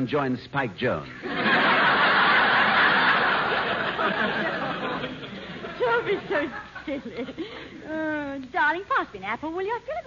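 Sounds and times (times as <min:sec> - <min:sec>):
studio audience laughing: 0:01.2 - 0:07.7.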